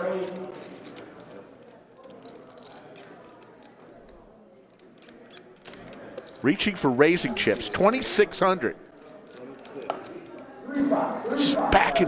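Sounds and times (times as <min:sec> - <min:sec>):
poker chips clicking: 0:00.1 - 0:08.0.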